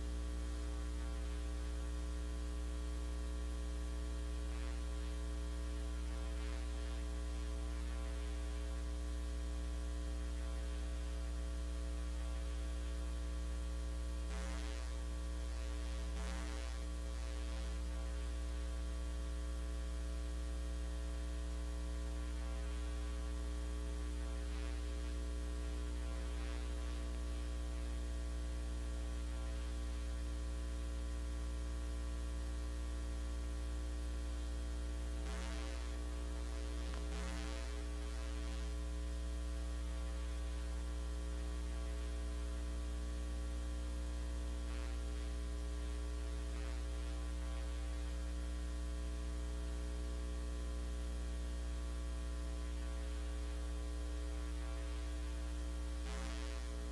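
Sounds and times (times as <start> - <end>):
electrical mains hum: 0.0 - 56.9.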